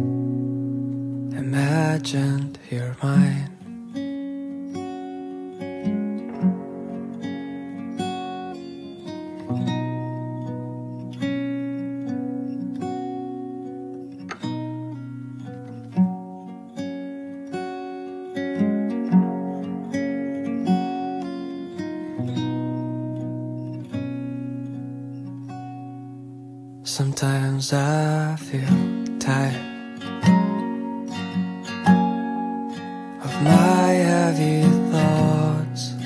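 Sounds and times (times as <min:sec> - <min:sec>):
guitar playing plucked notes: 0:00.0 - 0:36.0.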